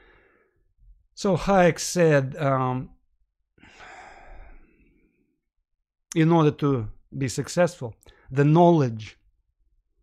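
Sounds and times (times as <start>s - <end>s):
person breathing out: 0.0s - 0.6s, 3.6s - 5.2s.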